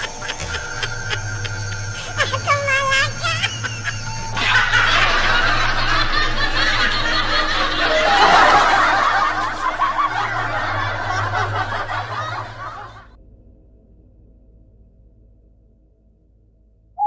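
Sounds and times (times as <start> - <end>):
high-pitched cackling laughter: 0.0 - 13.1.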